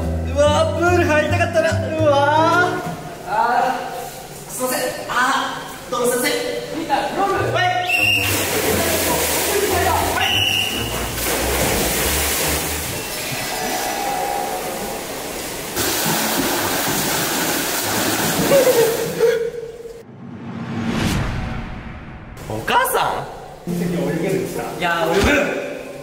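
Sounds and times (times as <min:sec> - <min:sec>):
water splashing in pool: 0:07.9 - 0:19.4.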